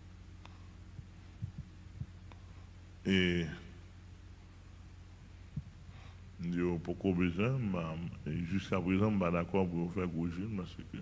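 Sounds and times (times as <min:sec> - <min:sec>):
low electrical hum: 0:00.0 - 0:11.0
soft low thumps: 0:00.8 - 0:02.4, 0:05.2 - 0:06.0.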